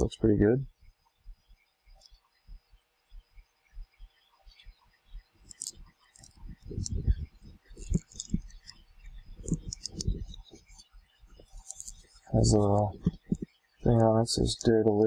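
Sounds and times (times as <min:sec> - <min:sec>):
faint steady whir: 0:00.0 - 0:15.0.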